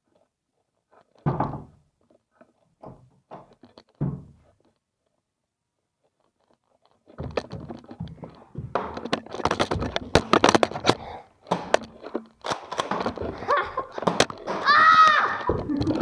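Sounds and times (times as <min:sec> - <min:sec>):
camera jostling: 0:09.0 - 0:16.0
long high-pitched yell: 0:14.6 - 0:15.6.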